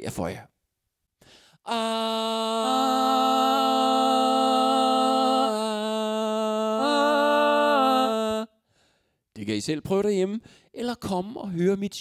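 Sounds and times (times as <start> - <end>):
man singing a long note: 1.7 - 8.6.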